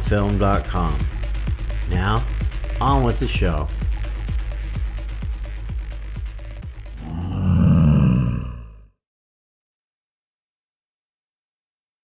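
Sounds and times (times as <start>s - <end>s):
deep roar: 7.0s - 8.9s.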